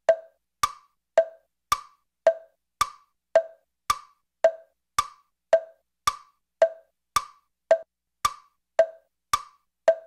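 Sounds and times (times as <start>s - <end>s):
hollow wood-block clicks: 0.0s - 10.0s.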